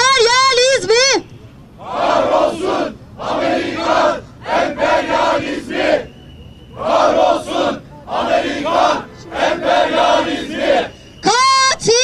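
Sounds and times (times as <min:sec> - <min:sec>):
crowd chanting in unison: 0:01.8 - 0:11.0.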